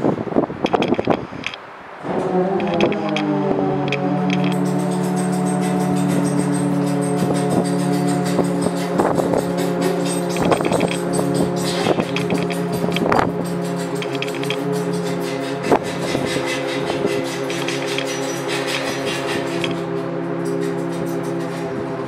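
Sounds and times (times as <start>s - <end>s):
metallic clicks and knocks: 0.6s - 1.6s, 2.2s - 22.0s
winch motor humming: 2.1s - 22.0s.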